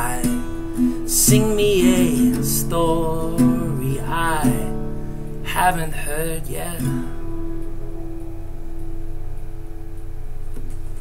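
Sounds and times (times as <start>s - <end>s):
acoustic guitar chord ringing: 0.0s - 11.0s
steady low hum: 0.0s - 11.0s.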